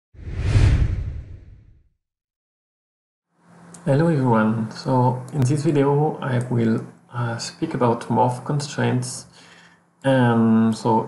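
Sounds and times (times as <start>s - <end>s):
whoosh sound effect: 0.2s - 1.7s
deep rumble: 0.2s - 1.8s.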